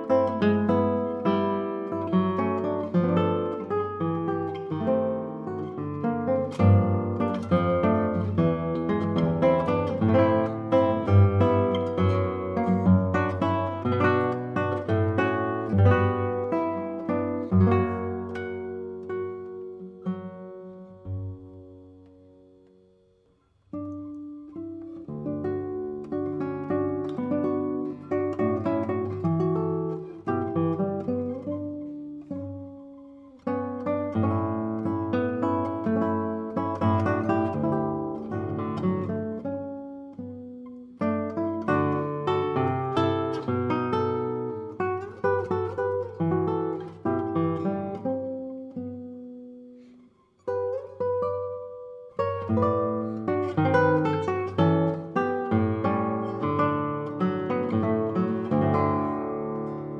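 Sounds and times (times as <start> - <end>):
classical guitar playing: 0.0 - 59.9.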